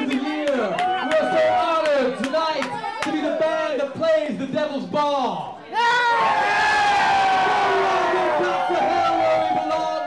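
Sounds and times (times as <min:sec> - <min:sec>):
crowd yelling and cheering: 0:00.0 - 0:03.5, 0:05.6 - 0:10.0.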